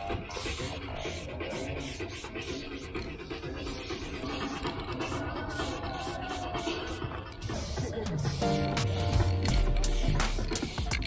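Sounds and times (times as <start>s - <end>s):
spray can hissing: 0.0s - 11.0s.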